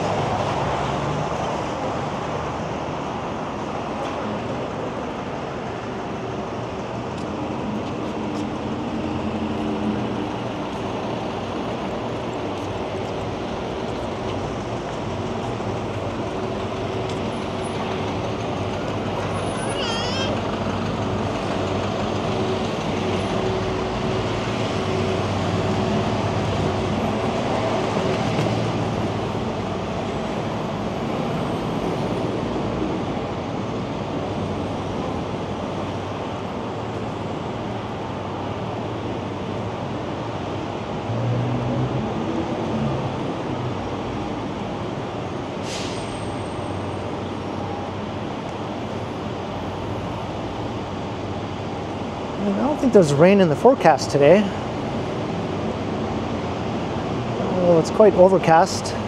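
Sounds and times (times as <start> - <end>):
street traffic hum: 0.0 - 59.0.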